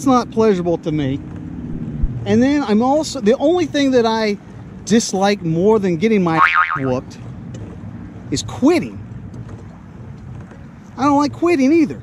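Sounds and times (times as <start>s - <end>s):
light outdoor noise: 0.0s - 12.0s.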